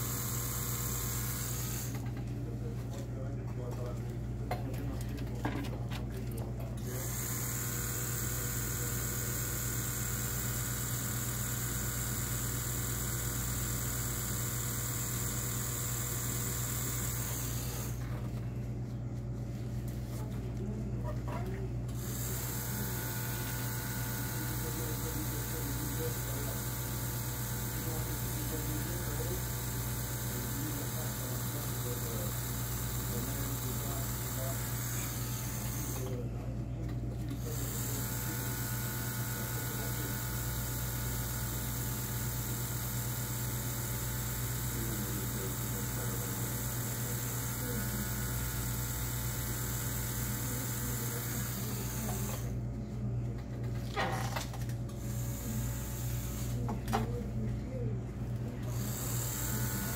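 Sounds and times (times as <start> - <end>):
tattoo machine buzzing: 0.0 - 2.1, 6.8 - 18.0, 22.0 - 36.2, 37.4 - 52.6, 55.0 - 56.6, 58.6 - 59.9.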